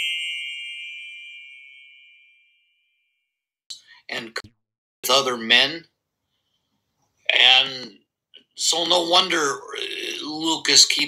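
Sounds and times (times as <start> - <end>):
bell-like ding: 0.0 - 3.3
speech: 3.7 - 6.0, 7.3 - 8.0, 8.6 - 11.0.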